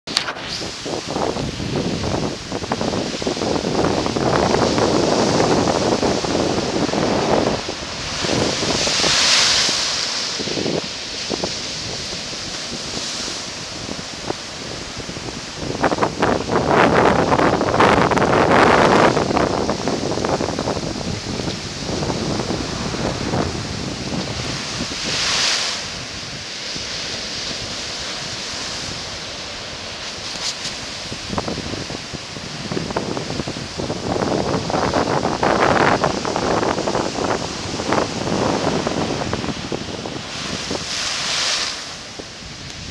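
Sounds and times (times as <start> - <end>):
ocean surf breaking: 0.1 - 42.9
wind buffeting microphone: 0.1 - 42.9.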